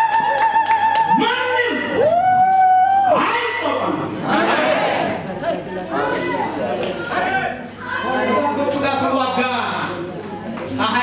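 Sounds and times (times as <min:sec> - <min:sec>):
man talking over sound system: 0:01.1 - 0:02.0, 0:08.3 - 0:10.0, 0:10.7 - 0:11.0.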